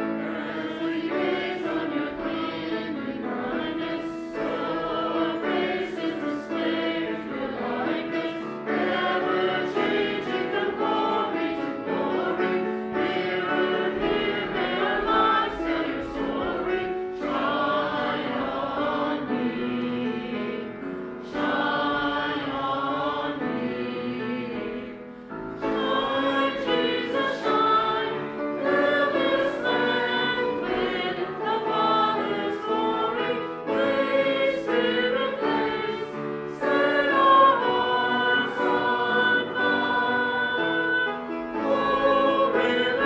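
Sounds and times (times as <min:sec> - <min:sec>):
congregation singing a hymn: 0:00.0 - 0:43.0.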